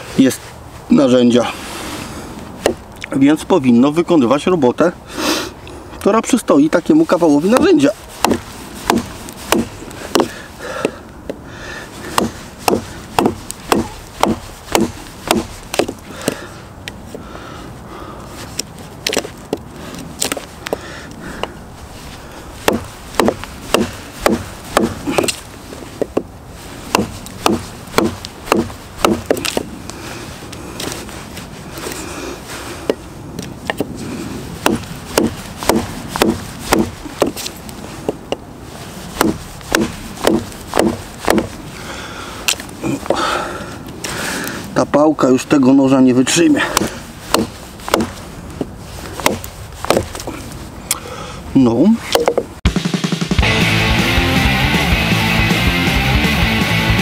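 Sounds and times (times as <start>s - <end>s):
knife chopping into wood: 7.4s - 11.0s, 12.0s - 16.4s, 20.2s - 20.8s, 22.6s - 26.3s, 26.9s - 29.7s, 34.6s - 37.5s, 39.2s - 41.6s, 46.6s - 48.2s, 49.2s - 50.3s.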